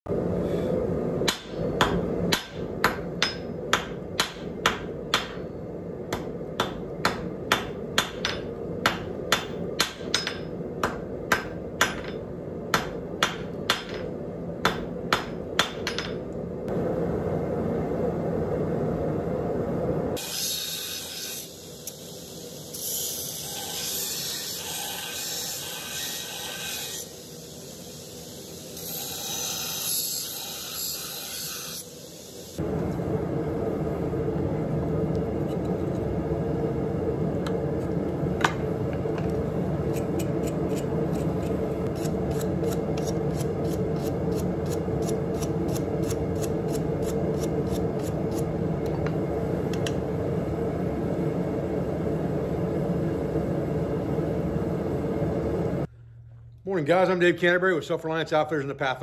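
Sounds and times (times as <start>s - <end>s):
hammer striking steel on anvil: 1.2s - 5.5s, 6.1s - 16.2s
grinder grinding steel: 28.8s - 31.9s.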